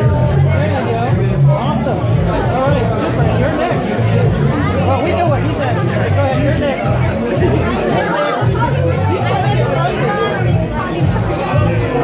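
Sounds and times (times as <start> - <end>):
music with bass notes: 0.0 - 12.0
voices talking over each other: 0.0 - 12.0.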